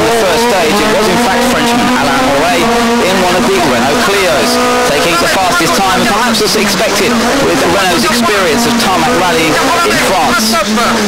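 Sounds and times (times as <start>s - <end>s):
person speaking: 0.0s - 11.0s
rally car engine revving: 0.0s - 11.0s.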